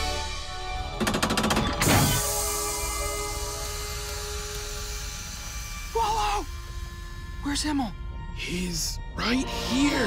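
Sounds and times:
rapid mechanical clicks: 1.0 - 1.9.

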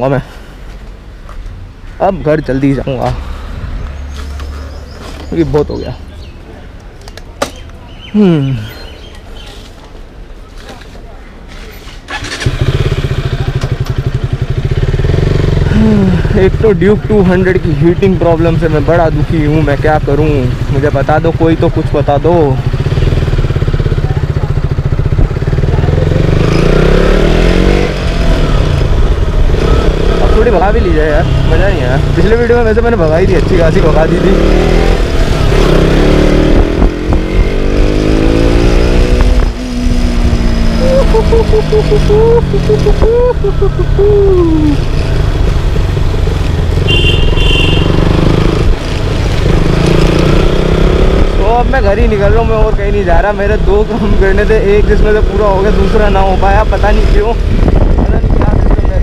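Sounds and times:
motorcycle engine revving: 12.1 - 59.0.

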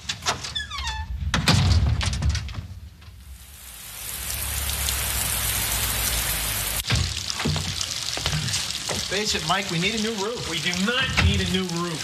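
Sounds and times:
water dripping through roof: 3.0 - 12.0
heavy rain falling: 3.2 - 12.0.

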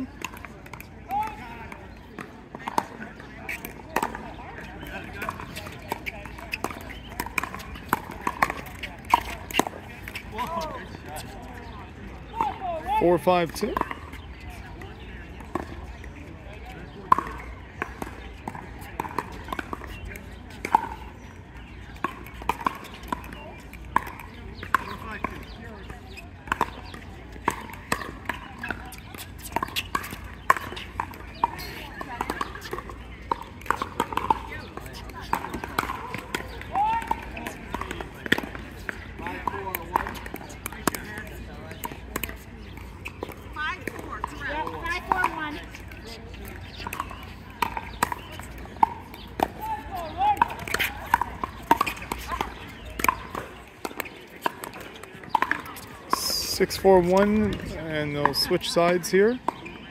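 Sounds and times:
paddles hitting plastic ball: 0.2 - 10.8, 26.5 - 58.5.

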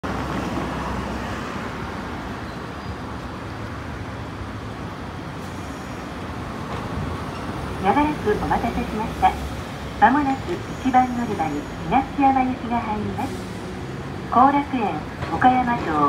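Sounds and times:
street traffic noise: 0.0 - 16.0
streetcar rumbling: 0.0 - 16.0
station announcement: 6.9 - 16.0.

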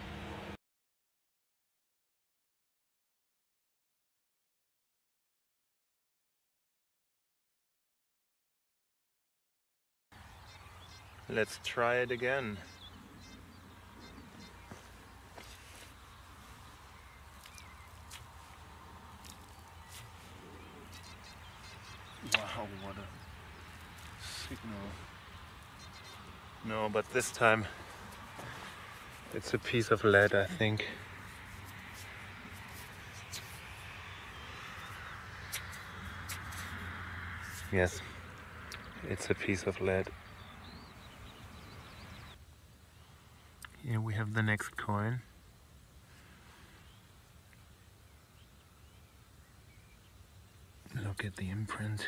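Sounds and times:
hands scraping dry stony soil: 14.3 - 23.0, 23.6 - 33.9, 34.8 - 37.8.

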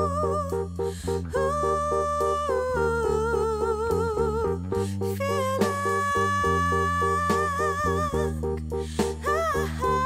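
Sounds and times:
bass line: 0.0 - 10.0
woman singing with vibrato: 0.0 - 10.0.

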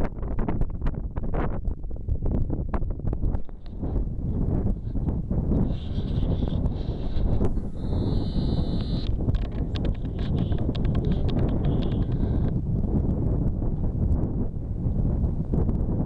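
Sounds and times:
wind buffeting microphone: 0.0 - 16.0
rocks clacking and knocking: 9.1 - 12.5.

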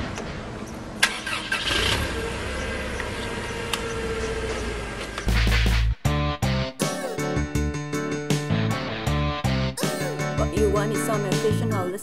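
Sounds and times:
engine cranking: 1.0 - 5.7.

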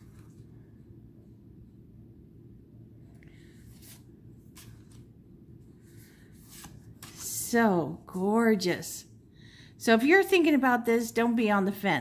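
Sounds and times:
low room hum: 0.0 - 12.0
cards sliding against cards: 3.5 - 5.1, 5.8 - 7.2.

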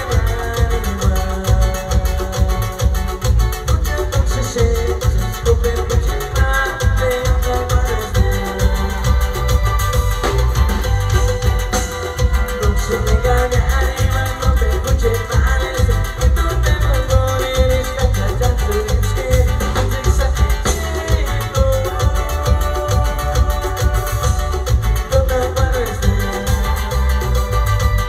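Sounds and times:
live band dance music: 0.0 - 28.0.

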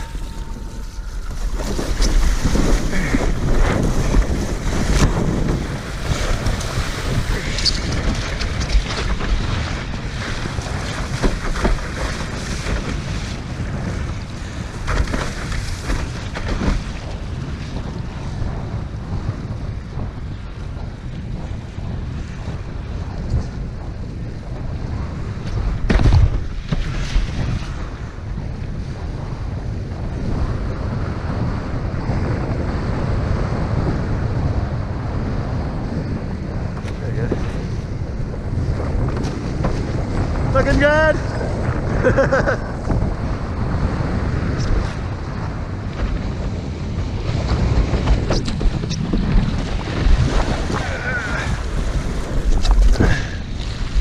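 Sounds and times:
water hissing and slapping: 0.0 - 13.8, 47.5 - 54.0
wind buffeting microphone: 0.0 - 54.0.

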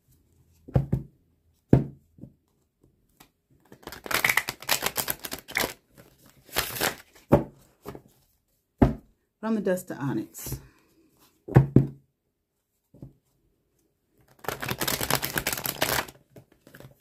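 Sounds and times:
cards being riffle-shuffled: 3.2 - 8.2, 14.2 - 17.0.

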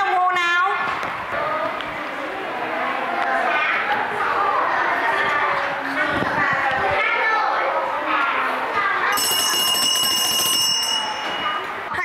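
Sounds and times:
bright bell-like ringing tone: 9.1 - 11.8.

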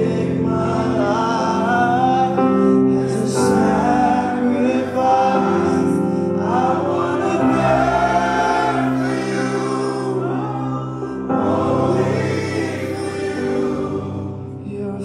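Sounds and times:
group of voices singing: 0.0 - 15.0
held keyboard chords: 0.0 - 15.0
man singing gospel: 0.0 - 15.0.

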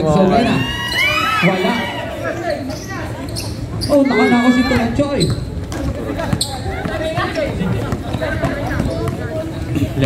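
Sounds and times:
basketball bouncing on a court: 4.6 - 9.8.

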